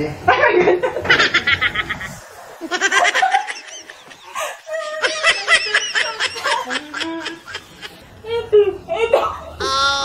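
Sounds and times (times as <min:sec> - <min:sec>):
high-pitched giggling: 0:09.5 - 0:10.0.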